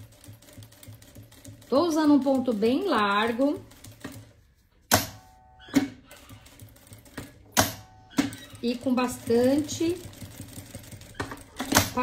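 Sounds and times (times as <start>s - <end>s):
sewing machine clacks: 0.0s - 4.3s, 5.8s - 12.0s.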